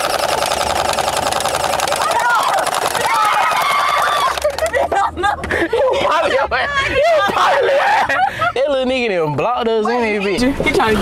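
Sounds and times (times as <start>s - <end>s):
rapid rattle of shots: 0.0s - 4.4s.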